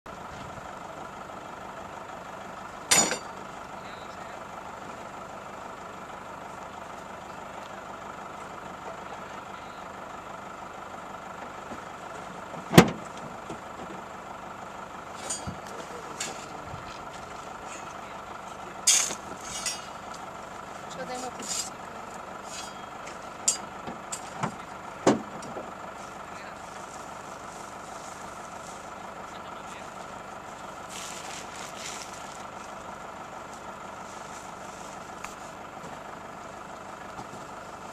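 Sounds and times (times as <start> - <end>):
distant off-road engine running: 0.1 - 37.9.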